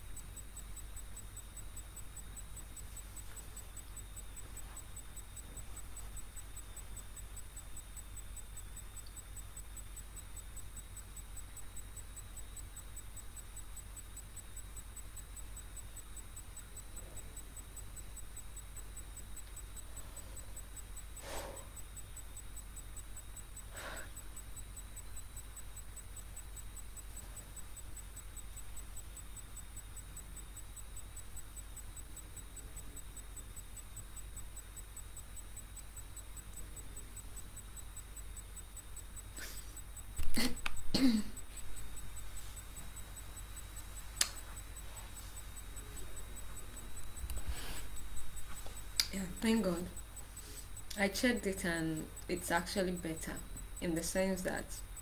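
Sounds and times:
low hiss and hum: 0.0s - 55.0s
thin high whine: 0.0s - 55.0s
short clicks: 44.2s - 44.4s.

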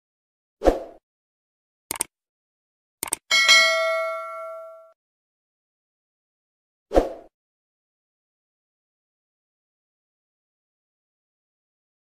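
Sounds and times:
mouse clicks: 1.9s - 2.1s, 3.0s - 3.2s
notification bell ding: 3.3s - 5.0s.

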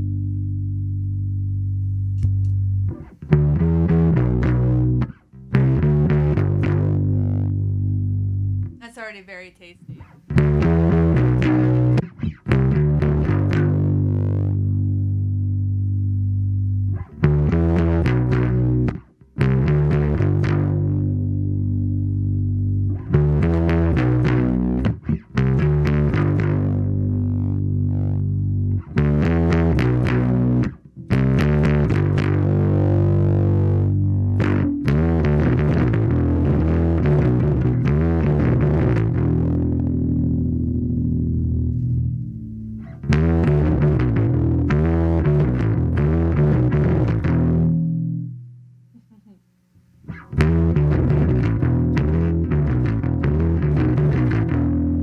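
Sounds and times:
overdriven electric bass: 0.0s - 8.8s, 9.9s - 49.1s, 49.7s - 55.0s.

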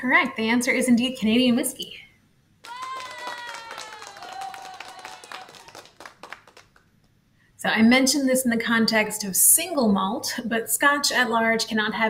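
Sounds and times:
high cheering voice: 2.6s - 6.2s
clapping: 2.6s - 6.9s.

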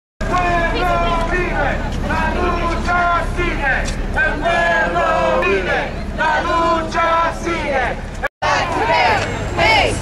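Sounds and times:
crowd chanting slogans: 0.2s - 10.0s
steady low rumble: 0.2s - 10.0s.

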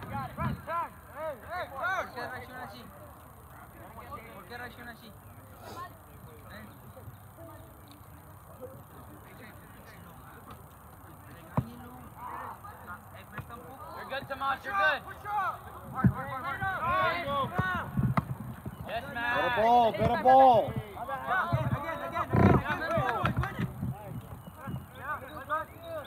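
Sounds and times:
people shouting calls: 0.0s - 4.7s, 11.7s - 18.0s, 18.8s - 26.0s.

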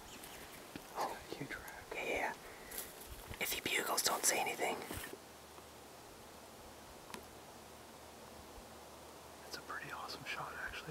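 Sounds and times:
steady background hiss: 0.0s - 10.9s
low whisper: 9.4s - 10.9s.

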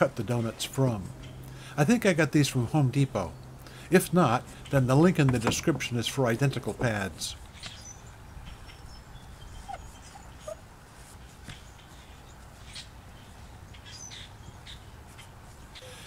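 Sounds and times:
faint chirp-like calls: 7.5s - 10.7s, 11.5s - 16.0s.

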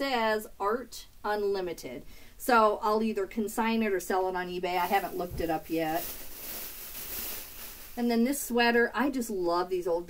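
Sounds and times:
fabric rustling: 4.8s - 8.4s.

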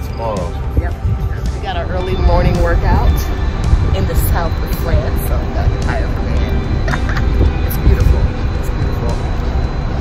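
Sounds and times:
indistinct voices: 0.0s - 10.0s
wind rumbling on microphone: 0.0s - 10.0s.

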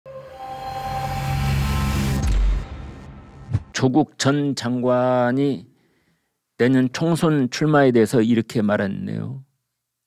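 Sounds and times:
low drone: 0.1s - 3.8s.

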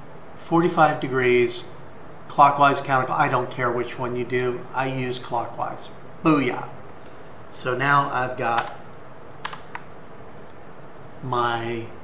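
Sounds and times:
low room hiss: 0.0s - 12.0s
keyboard keys clicking: 9.4s - 9.9s.

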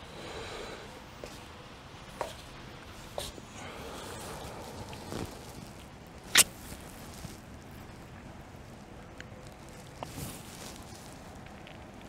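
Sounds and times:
clothing movement sounds: 2.2s - 7.8s, 9.7s - 12.0s
sharp short rustle: 4.1s - 7.6s, 9.8s - 11.4s.

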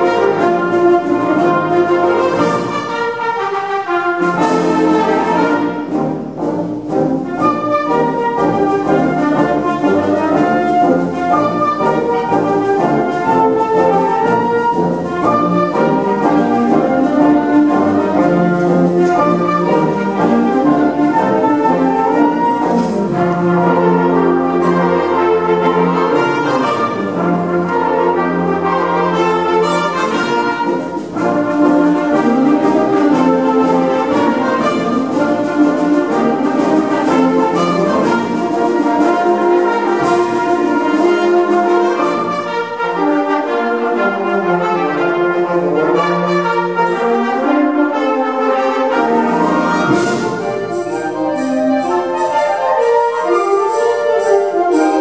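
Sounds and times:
wind band playing sustained chords: 0.0s - 55.0s.

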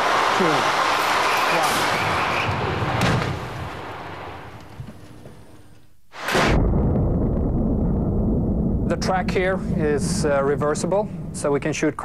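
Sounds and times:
loud burst of noise: 6.1s - 12.0s.

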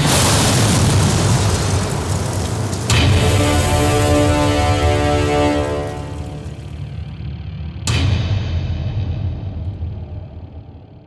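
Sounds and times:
sharp impact hit: 0.0s - 7.2s
low rumble: 0.1s - 11.0s
ominous held chord: 3.2s - 7.1s.

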